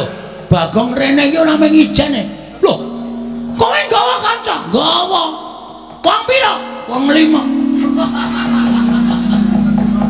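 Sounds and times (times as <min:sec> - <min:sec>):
gamelan music: 0:02.6 - 0:04.6, 0:07.1 - 0:10.0.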